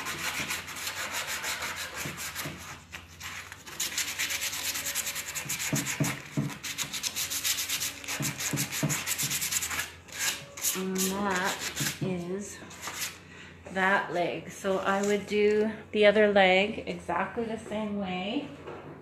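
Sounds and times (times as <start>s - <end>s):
sandpaper rubbing on wood: 0.0s - 12.0s.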